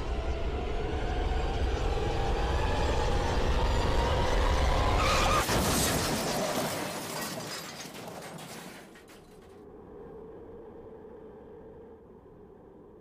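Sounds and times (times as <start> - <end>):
low tense drone: 9.6 - 13.0.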